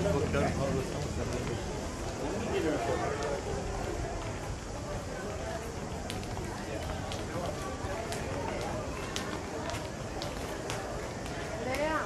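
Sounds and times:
murmur of voices: 0.0 - 12.0
footsteps: 0.8 - 12.0.

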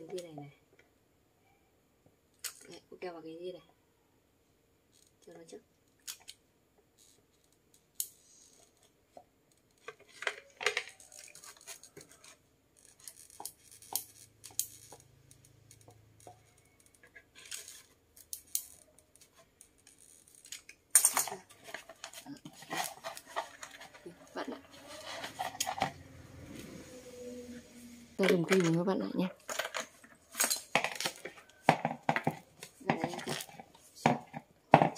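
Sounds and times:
plastic and foam clicks and scrapes: 7.1 - 15.1, 15.8 - 26.7, 28.2 - 34.9.

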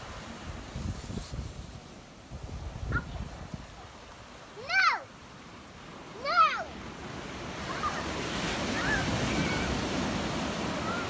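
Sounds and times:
ocean surf on sandy beach: 0.0 - 11.0.

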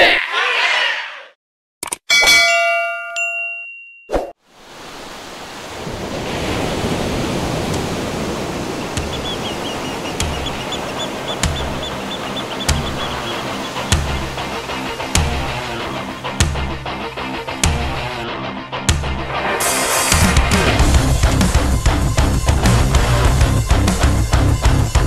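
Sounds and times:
bright bell-like chime: 2.1 - 4.1
rushing wash: 4.4 - 17.5
background music with soft beats: 10.0 - 18.1.

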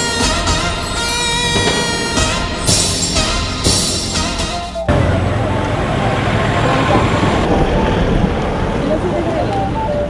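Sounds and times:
music: 0.0 - 8.4, 9.2 - 10.0
traffic rushing: 0.0 - 10.0.

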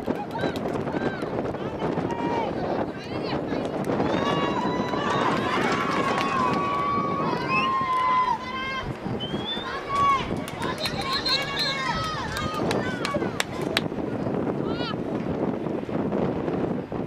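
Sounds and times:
crowd chatter: 0.0 - 15.4
players shouting: 4.0 - 13.9.

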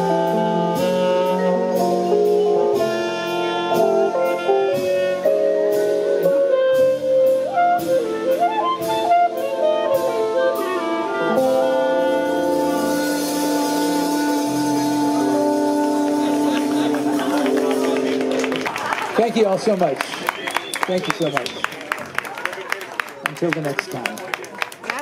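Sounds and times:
drums with cymbal strokes: 0.0 - 17.8
clarinet melody: 0.0 - 19.0
sustained band chords: 0.0 - 19.0.

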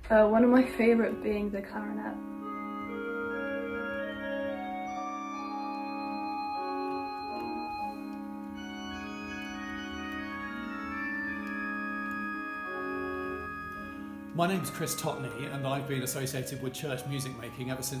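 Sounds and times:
church organ playing chords: 1.0 - 18.0.

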